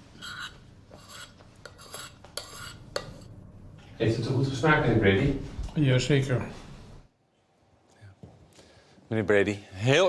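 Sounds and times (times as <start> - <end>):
metal spoon scraping a plate: 0.2 - 3.4.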